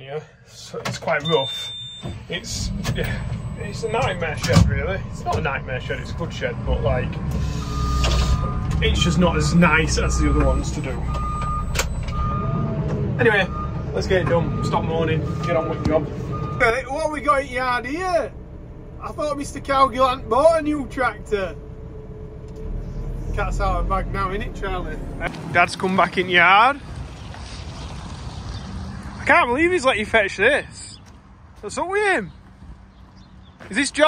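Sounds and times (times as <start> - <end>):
reversing alarm beeps: 1.2 - 2.2, 7.5 - 12.6, 13.4 - 16.8
diesel engine running: 2.3 - 27.3.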